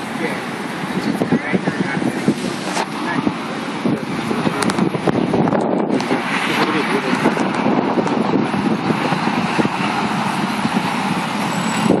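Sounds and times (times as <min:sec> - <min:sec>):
people talking: 0:00.0 - 0:10.2
traffic noise: 0:00.0 - 0:12.0.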